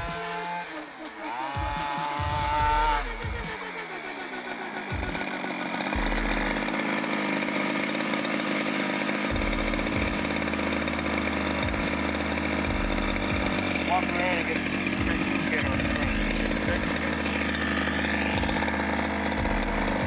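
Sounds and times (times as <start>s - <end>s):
two-stroke engine idling: 0.0s - 20.0s.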